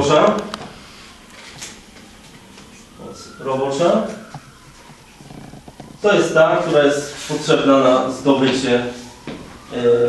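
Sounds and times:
man speaking: 0:00.0 - 0:00.5, 0:03.0 - 0:04.2, 0:06.0 - 0:09.0, 0:09.7 - 0:10.0.

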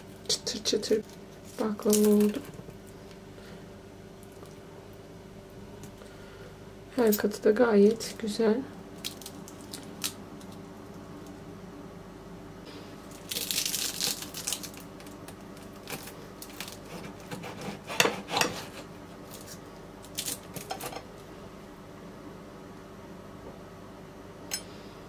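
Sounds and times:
crisp pastry crackling: 0:00.0 - 0:02.9, 0:08.8 - 0:11.4, 0:13.0 - 0:17.3, 0:19.2 - 0:20.7.

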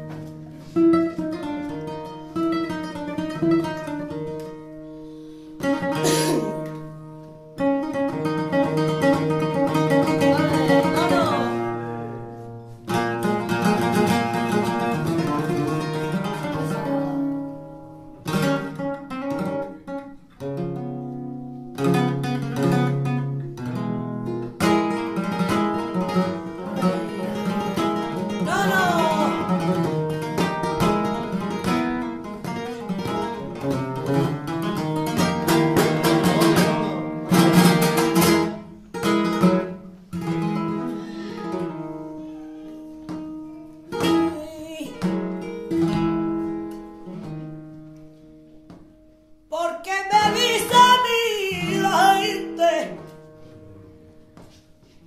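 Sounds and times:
flamenco acoustic guitar: 0:00.0 - 0:55.0.

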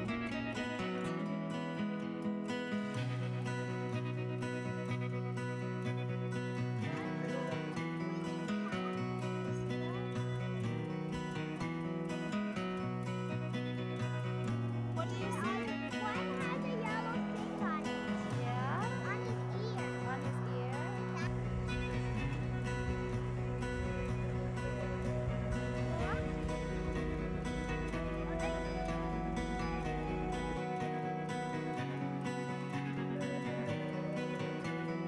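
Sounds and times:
background music with steady beat: 0:02.4 - 0:35.0
elk high rising calls: 0:15.6 - 0:35.0.

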